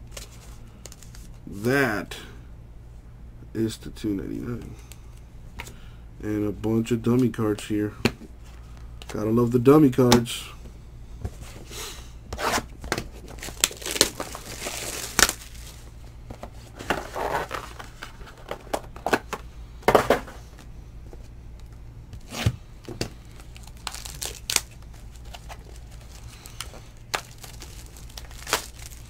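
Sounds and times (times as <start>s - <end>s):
box crackles and snaps: 12.9s - 15.8s, 22.9s - 29.0s
wrapping tearing and crinkling: 13.2s - 16.0s, 23.3s - 29.0s.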